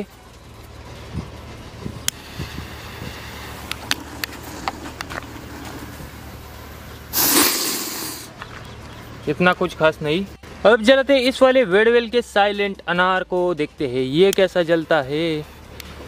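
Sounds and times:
firecracker hissing: 2.1s - 8.4s.

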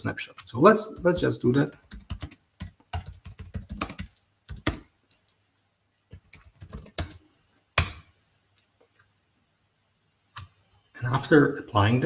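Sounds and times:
keystrokes on computer keyboard: 0.4s - 5.4s, 6.0s - 7.2s.

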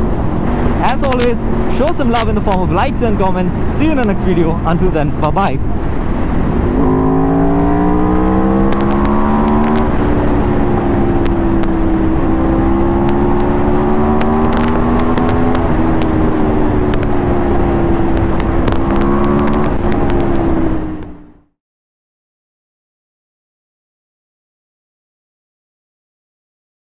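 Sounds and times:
wind rushing: 0.0s - 21.3s
motorcycle engine pulling hard: 5.8s - 21.2s.

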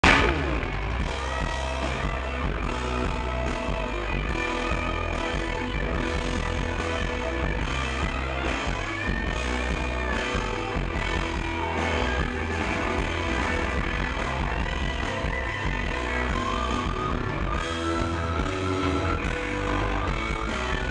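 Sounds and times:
rock band playing live: 0.0s - 20.9s.

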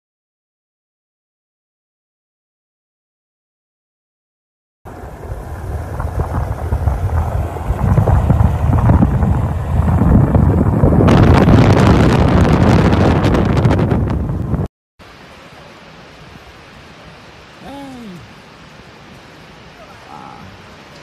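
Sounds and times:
wind buffeting microphone: 4.9s - 14.7s
road rumble: 4.9s - 21.0s
quiet steady hiss: 15.0s - 21.0s.

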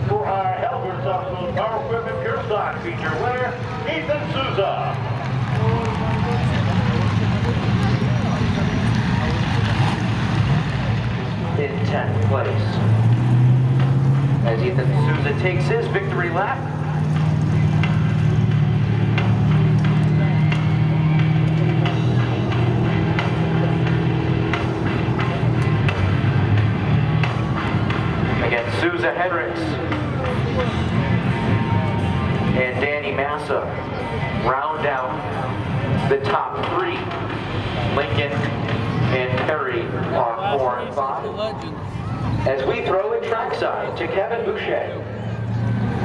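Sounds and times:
race car engine running: 0.0s - 46.0s.

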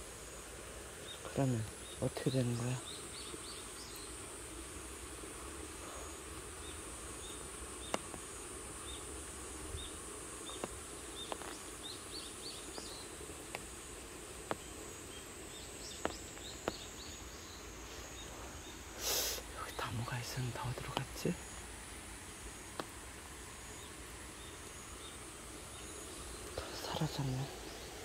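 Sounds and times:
high insect hum: 0.0s - 28.0s
small birds chirping: 0.0s - 28.0s.

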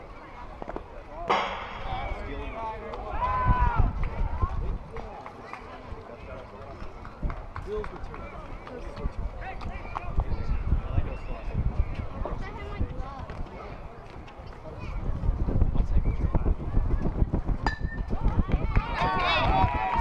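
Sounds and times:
baseball bat crack: 0.7s - 3.3s.

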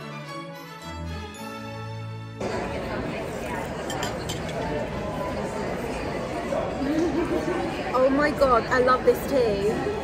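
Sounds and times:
murmur of diners chatting: 1.3s - 10.0s
clinks of china and cutlery: 3.7s - 4.8s.

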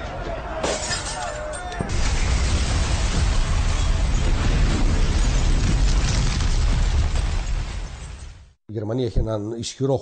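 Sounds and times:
glass breaking: 0.6s - 8.3s
loud dense rumbling noise: 1.9s - 8.4s.

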